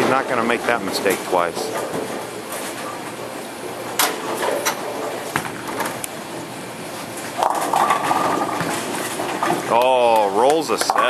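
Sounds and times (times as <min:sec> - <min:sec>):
bowling balls rolling: 0:00.0 - 0:11.0
bowling pins clattering: 0:00.0 - 0:11.0.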